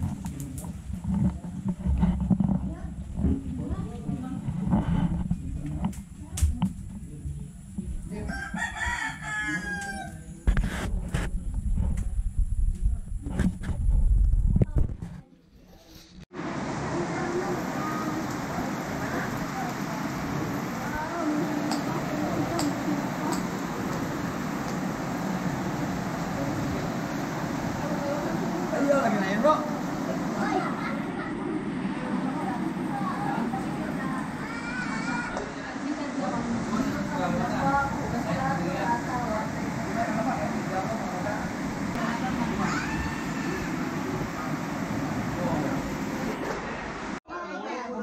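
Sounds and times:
rooster crowing: 0:08.2 - 0:10.3, 0:42.4 - 0:44.5
indistinct voices: 0:16.6 - 0:48.0.

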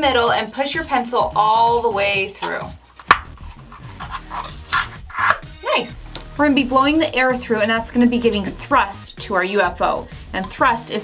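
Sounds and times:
pencil popping through paper cup: 0:02.4 - 0:05.4
paper rubbing against pencil: 0:03.4 - 0:05.4.

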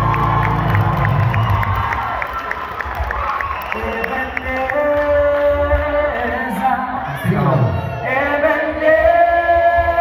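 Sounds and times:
male vocal group singing harmony: 0:08.0 - 0:10.0.

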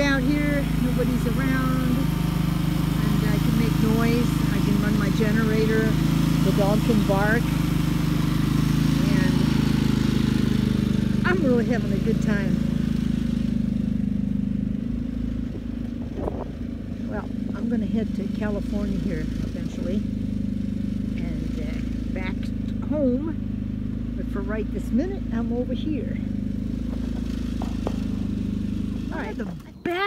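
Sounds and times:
generator engine running: 0:00.0 - 0:30.0.

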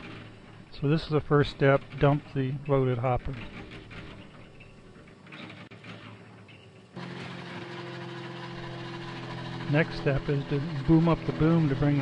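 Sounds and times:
faint outdoor background: 0:00.0 - 0:12.0
engine idling: 0:07.0 - 0:12.0.

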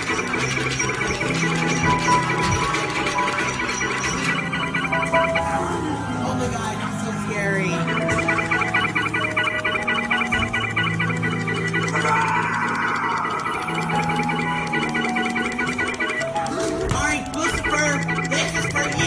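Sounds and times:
fast repeating electronic figure: 0:00.0 - 0:19.0.

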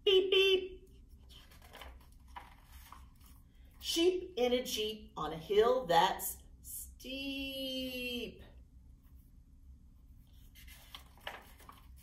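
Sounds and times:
book pages turning: 0:01.0 - 0:03.5, 0:10.3 - 0:12.0.

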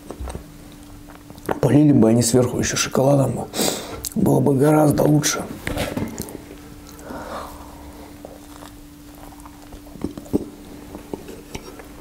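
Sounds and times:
faint steady hum: 0:00.0 - 0:12.0
chewing pastry: 0:08.1 - 0:11.4.

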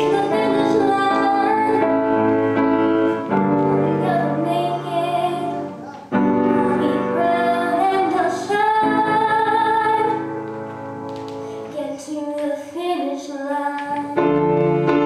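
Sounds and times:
woman singing: 0:00.0 - 0:02.0, 0:03.7 - 0:05.8, 0:06.4 - 0:10.3, 0:11.7 - 0:14.4
upright piano: 0:00.0 - 0:15.0.

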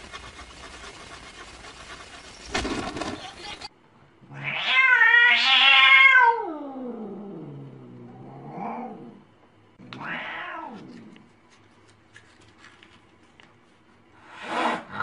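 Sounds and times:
cat yowling: 0:04.3 - 0:06.7.

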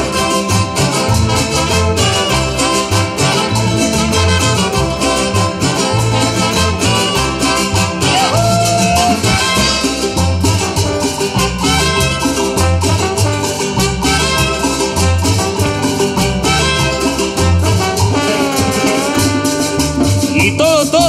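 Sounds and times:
live cumbia band playing: 0:00.0 - 0:21.0.

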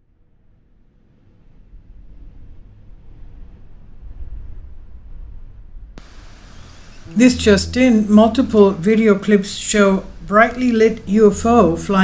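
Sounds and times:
low rumbling noise: 0:01.4 - 0:12.0
faint hiss: 0:06.0 - 0:12.0.

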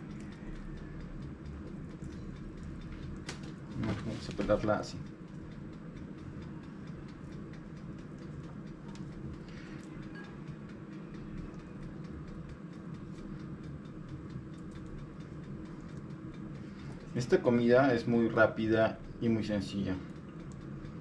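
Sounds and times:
air fryer fan humming: 0:00.0 - 0:21.0.

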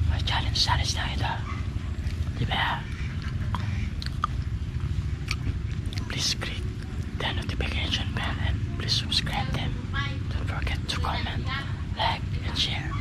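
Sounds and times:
chewing crisp cracker: 0:02.0 - 0:07.1.

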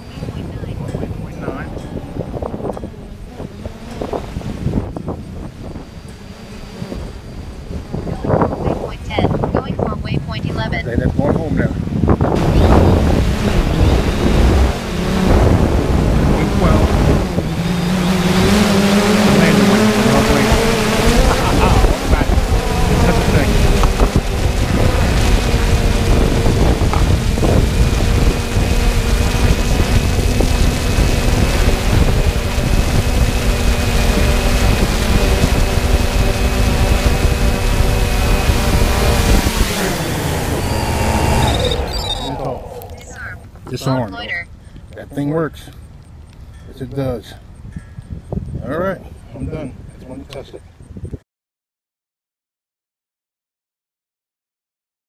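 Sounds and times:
quadcopter motors whining: 0:00.0 - 0:11.4, 0:12.0 - 0:45.5
wind noise: 0:00.0 - 0:51.2.

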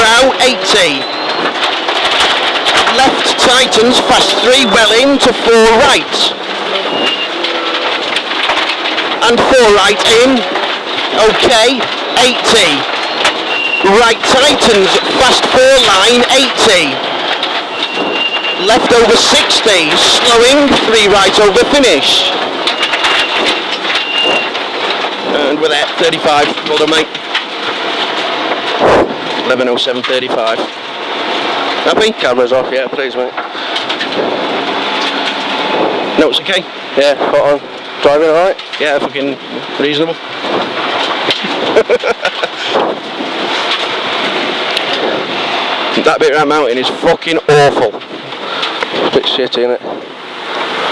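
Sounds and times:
tyres rushing on wet gravel: 0:00.0 - 0:50.9.

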